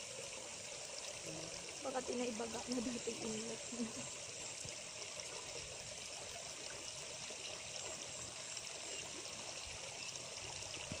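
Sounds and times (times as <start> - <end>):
water trickling into pond: 0.0 - 11.0.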